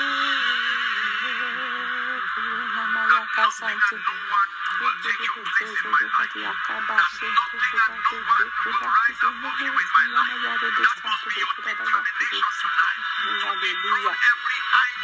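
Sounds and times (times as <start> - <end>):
faint music: 0.0 - 15.0
person praying into microphone: 0.0 - 15.0.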